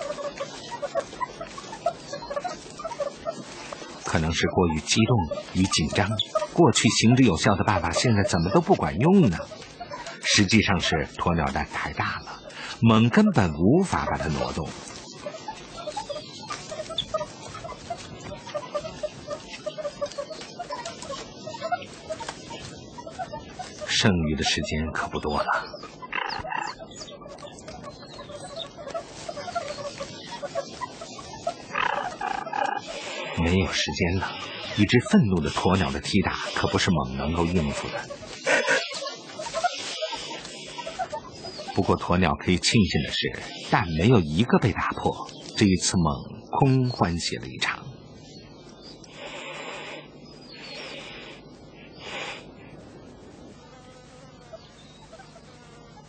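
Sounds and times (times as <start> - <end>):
mongooses chattering: 0.0 - 52.7, 53.6 - 56.0
mongoose squeal: 4.1 - 11.0, 15.2 - 42.0
ostrich hissing: 31.1 - 41.9, 49.1 - 52.5.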